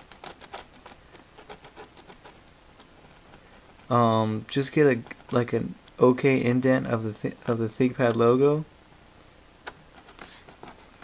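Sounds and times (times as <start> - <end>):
pen scratching and tapping vinyl: 0.0 - 4.0, 4.8 - 6.0.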